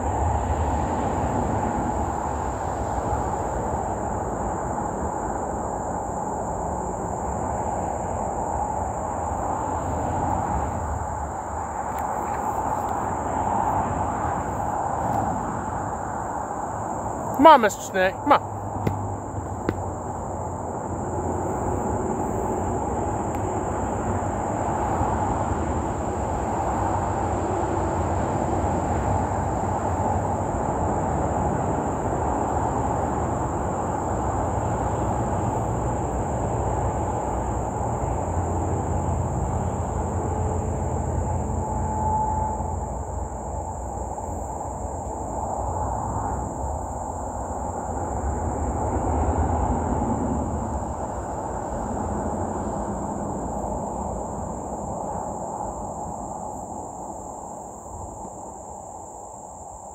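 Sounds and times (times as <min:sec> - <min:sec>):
insects droning: 0:00.0 - 0:59.9.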